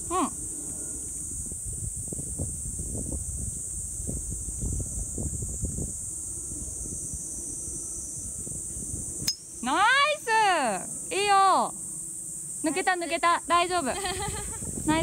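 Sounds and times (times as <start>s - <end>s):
wind buffeting microphone: 0.0s - 11.3s, 12.8s - 15.0s
insects droning: 0.0s - 15.0s.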